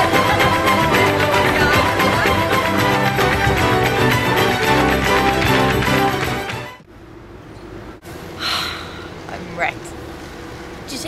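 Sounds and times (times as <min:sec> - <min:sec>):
steady low hum: 0:06.8 - 0:11.0
person gasping: 0:08.4 - 0:09.2.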